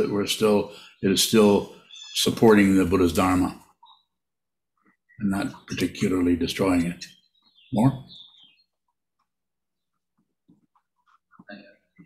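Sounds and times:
man speaking: 0.0 - 3.6, 5.2 - 8.1.

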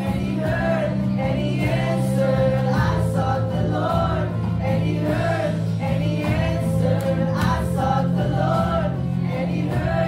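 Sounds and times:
keyboard and guitar chords: 0.0 - 10.0
singers singing worship song: 0.0 - 10.0.

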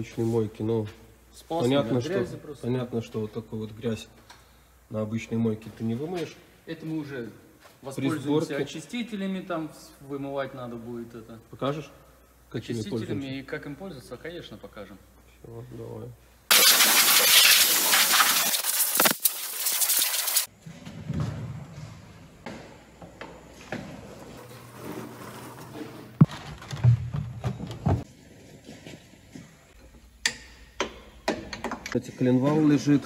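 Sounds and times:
loud rushing hiss: 16.5 - 20.5
workshop clicks and knocks: 30.2 - 32.0.

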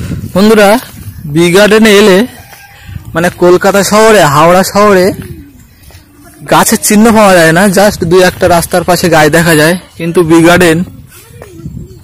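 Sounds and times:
man speaking: 0.3 - 2.5, 3.1 - 5.5, 6.3 - 10.9.

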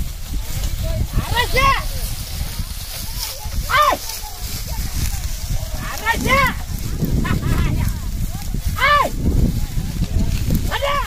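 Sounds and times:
man shouting calls: 1.1 - 1.9, 3.6 - 4.1, 5.8 - 6.6, 8.7 - 9.2, 10.6 - 11.0.

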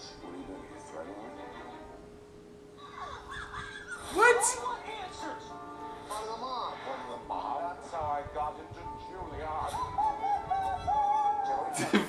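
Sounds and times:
high-pitched laughter: 2.8 - 4.2.

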